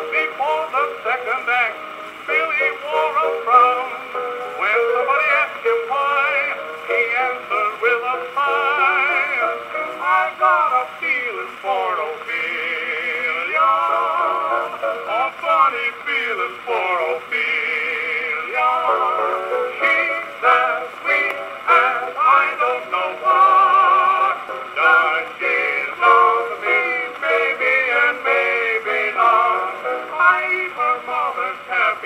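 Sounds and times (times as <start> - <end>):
old record comic duet with accompaniment: 0.0 - 32.0.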